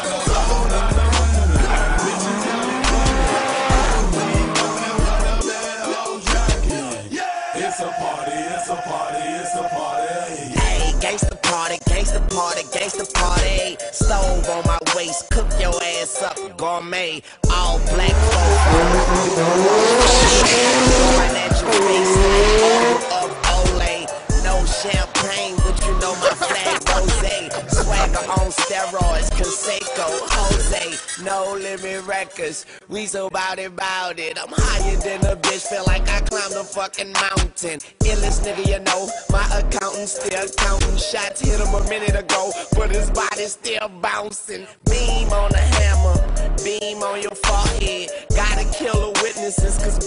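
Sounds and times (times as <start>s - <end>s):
hip hop music with heavy bass: 0.0s - 50.0s
car engine revving: 0.3s - 5.4s, 17.4s - 28.4s
tyres squealing: 18.0s - 28.4s.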